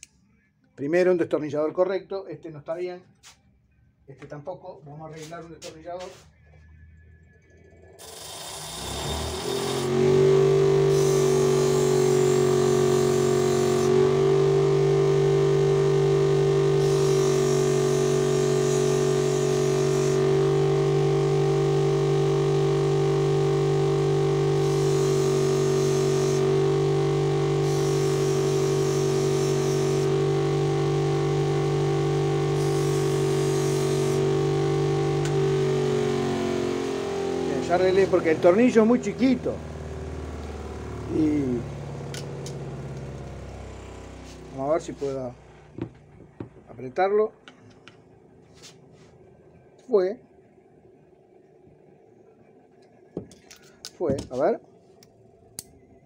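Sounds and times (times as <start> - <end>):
bench grinder humming: 7.9 - 46.7
high grinding hiss: 24.6 - 26.8, 27.6 - 30.1.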